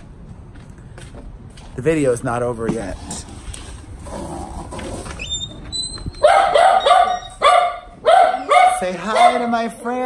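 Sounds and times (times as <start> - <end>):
small dog barking: 6.2 - 9.6.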